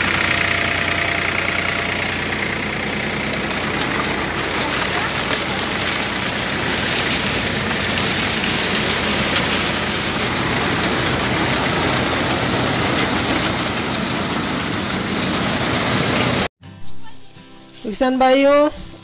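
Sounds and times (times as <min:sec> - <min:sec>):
thresher mechanical clatter: 0:00.0 - 0:16.5
tractor engine drone: 0:00.0 - 0:16.5.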